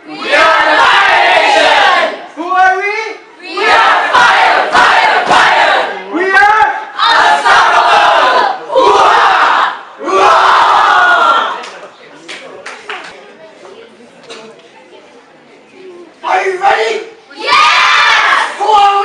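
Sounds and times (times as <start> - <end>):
children shouting a chant: 0.0 - 2.2, 3.4 - 5.9, 16.4 - 19.0.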